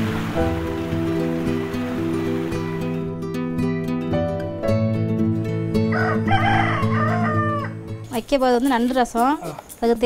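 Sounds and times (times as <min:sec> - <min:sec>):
background music: 0:00.0 - 0:10.0
rooster crowing: 0:05.9 - 0:07.9.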